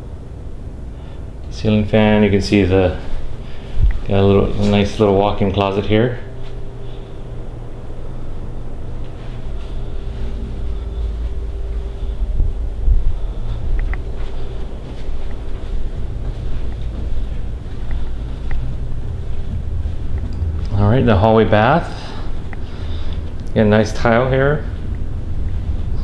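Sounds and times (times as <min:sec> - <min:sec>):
faint steady hum: 0:00.0 - 0:26.0
handling rumble of camera: 0:02.6 - 0:26.0.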